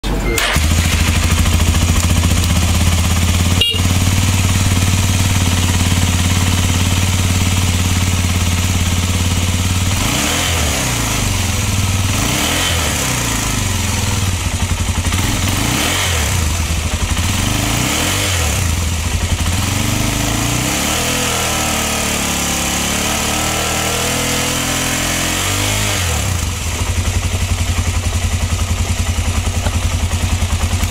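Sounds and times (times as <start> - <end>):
motorcycle engine idling and revving: 0.3 - 30.9.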